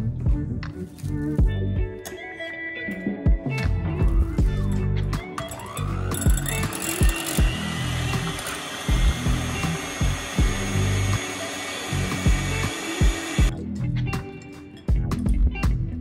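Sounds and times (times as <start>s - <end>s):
background music with beat: 0.0s - 16.0s
electric hand mixer whining: 5.4s - 13.5s.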